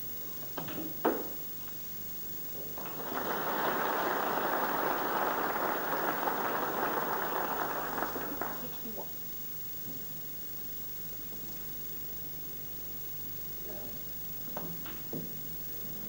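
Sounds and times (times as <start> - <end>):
audience applause: 2.8 - 8.8.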